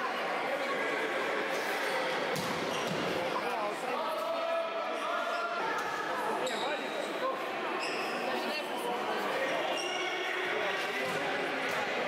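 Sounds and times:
ball kicked and bouncing: 0:02.4 - 0:03.1.

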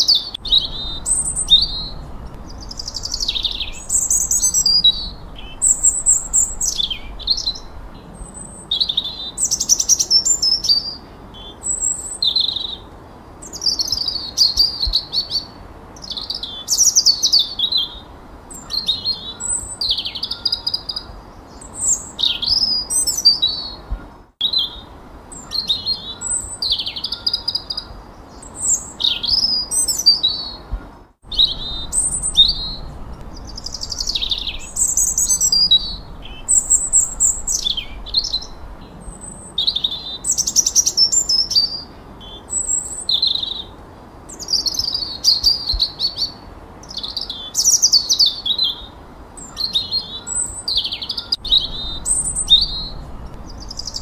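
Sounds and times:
songbirds singing: 0:00.0 - 0:54.0.

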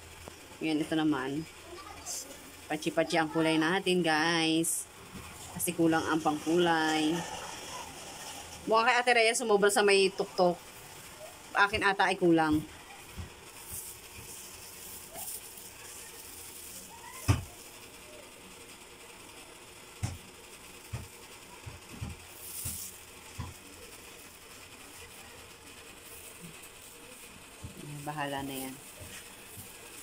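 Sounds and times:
plastic glove rustling: 0:02.0 - 0:18.2, 0:20.2 - 0:30.0
plastic crinkle: 0:10.9 - 0:18.2, 0:21.0 - 0:30.0.

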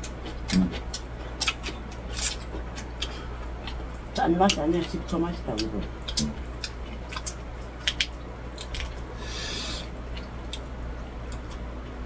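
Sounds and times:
chewing: 0:00.0 - 0:09.1, 0:10.0 - 0:11.7
low steady hum: 0:00.0 - 0:12.0.

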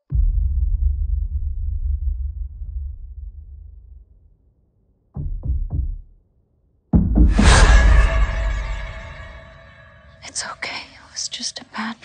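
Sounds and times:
person whispering: 0:10.2 - 0:12.0.

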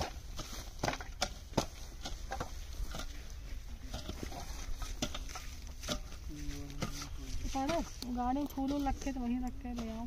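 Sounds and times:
hoes chopping into dry earth: 0:00.0 - 0:10.0.

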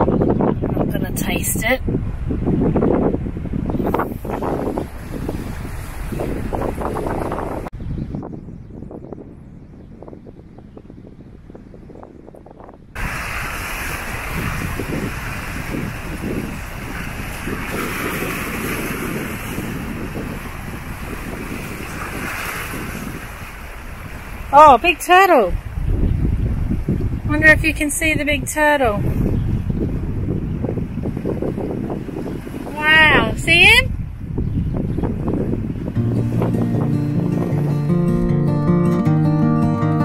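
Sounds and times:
wind buffeting microphone: 0:00.0 - 0:39.1
sea washing on rocky shore: 0:03.9 - 0:07.4, 0:13.0 - 0:25.7.

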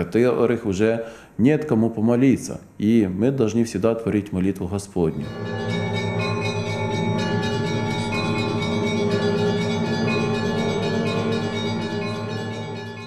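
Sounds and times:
church bells pealing: 0:05.2 - 0:13.0.

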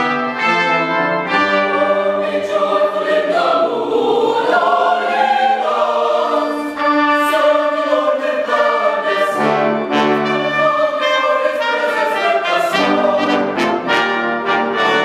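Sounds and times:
mixed choir singing: 0:00.0 - 0:15.0.

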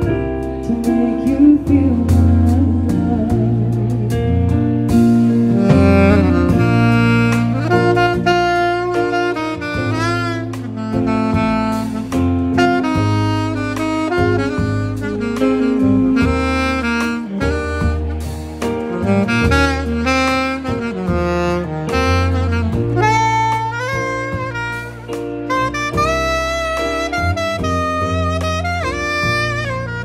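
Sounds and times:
electric bass guitar: 0:00.0 - 0:30.0
live band: 0:00.0 - 0:30.0
saxophone solo: 0:00.0 - 0:30.0.

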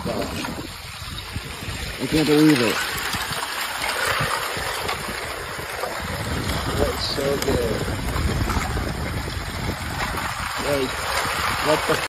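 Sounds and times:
ice cracking and crunching: 0:00.0 - 0:12.0
ice grinding hiss: 0:00.0 - 0:12.0.

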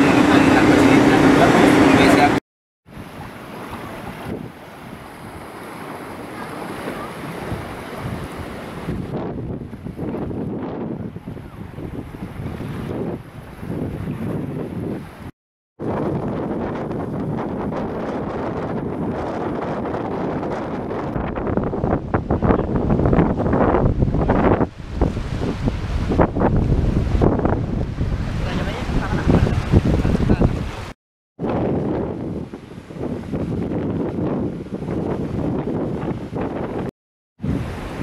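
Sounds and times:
wind buffeting microphone: 0:00.0 - 0:38.0
small waves washing onto sand: 0:02.9 - 0:10.1.

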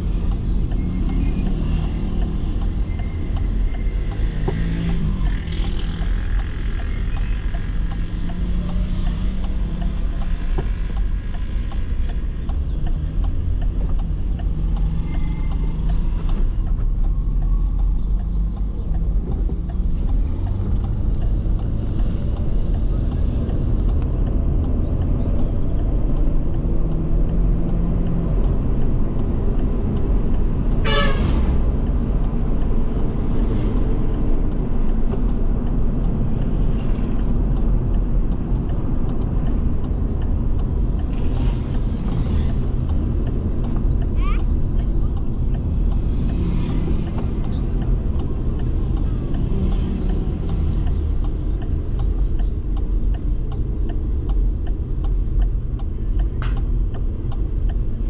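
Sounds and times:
car engine and tyre rumble: 0:00.0 - 0:58.0
vehicle horn toot: 0:30.8 - 0:31.5.

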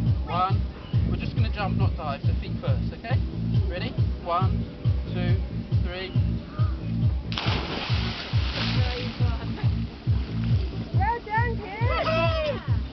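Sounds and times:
music with thumping beat: 0:04.9 - 0:12.9
loud splash into water: 0:07.3 - 0:09.4.

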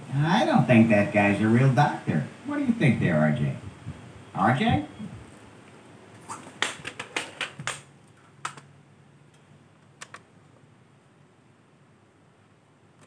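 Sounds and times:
disc player button clicks: 0:10.0 - 0:10.3.

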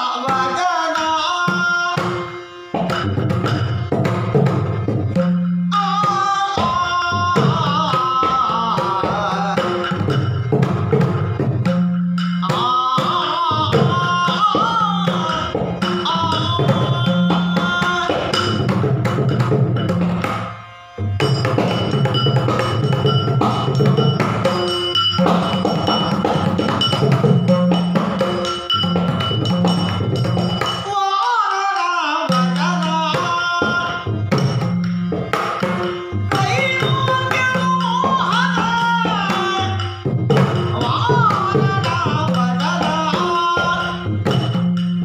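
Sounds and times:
ornamented singing voice: 0:00.0 - 0:03.9, 0:05.6 - 0:10.8, 0:11.6 - 0:18.9, 0:30.8 - 0:35.3, 0:36.1 - 0:44.6
barrel drum played by hand: 0:01.4 - 0:30.9, 0:32.3 - 0:45.0
small hand cymbals: 0:11.6 - 0:45.0.

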